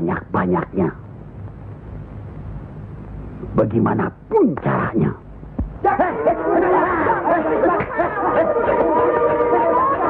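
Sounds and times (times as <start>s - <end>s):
people calling out over each other: 5.8s - 10.0s.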